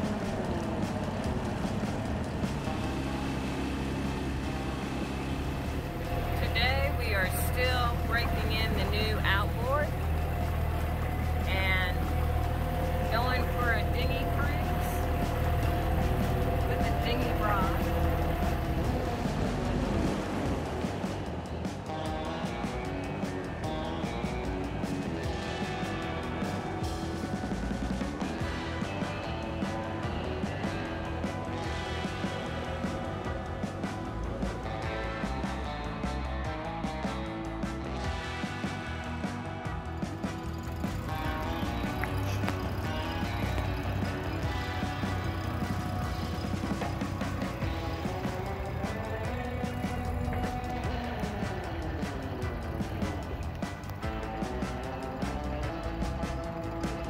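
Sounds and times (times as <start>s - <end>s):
background music: 0.0s - 57.0s
outboard motor running: 0.0s - 57.0s.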